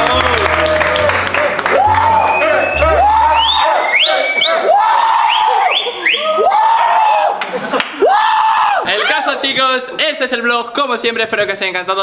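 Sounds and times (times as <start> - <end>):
group shouting and cheering: 0.0 - 9.5.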